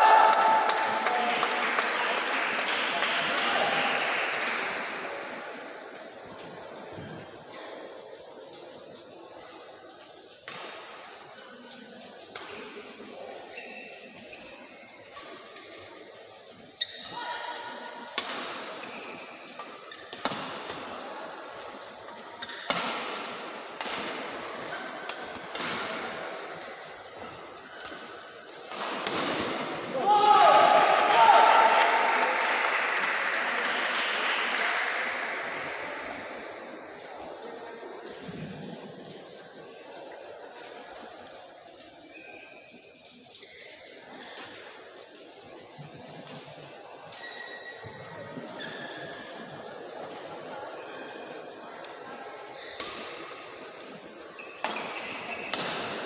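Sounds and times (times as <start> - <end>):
loud shout: 0.0 - 1.3, 29.9 - 32.8
racket hitting shuttlecock: 22.4 - 26.6, 54.6 - 56.0.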